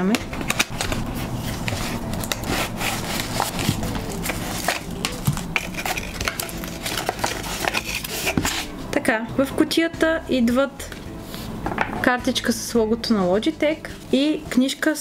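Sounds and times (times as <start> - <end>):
plastic packaging rustling: 0.2 - 8.8
cardboard flaps scraping: 0.4 - 8.8.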